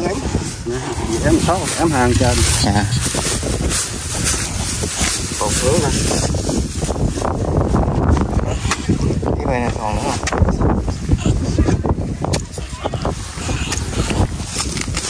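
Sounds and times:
voices talking: 0.0s - 15.0s
wind buffeting microphone: 0.0s - 15.0s.

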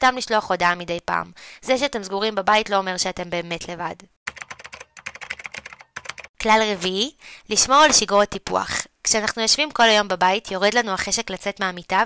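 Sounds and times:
keyboard typing clicks: 4.3s - 6.3s.

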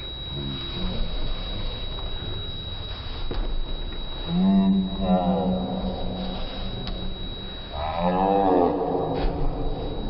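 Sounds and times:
low steady drone: 0.0s - 10.0s
thin high whine: 0.0s - 10.0s
deep drawn-out slowed voice: 4.2s - 10.0s.

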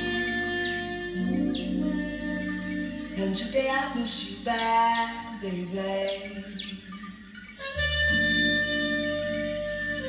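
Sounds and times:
bass: 0.0s - 6.9s, 7.6s - 10.0s
held chord over speakers: 0.0s - 10.0s.

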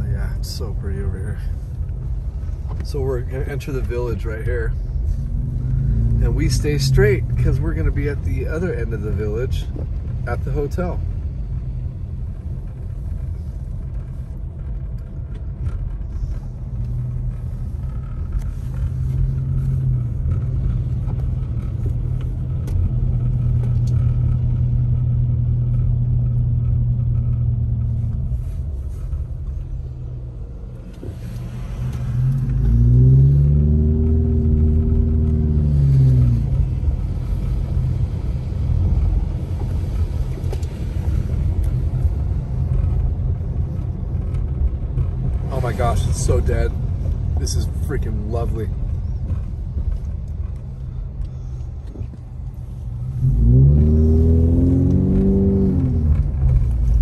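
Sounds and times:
engine and tyre rumble: 0.0s - 57.0s
engine revving: 5.1s - 9.2s, 31.1s - 37.0s, 53.0s - 57.0s.

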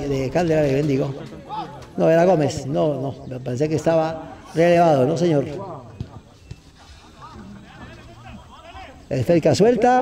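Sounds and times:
distant voices calling out: 0.0s - 9.8s.

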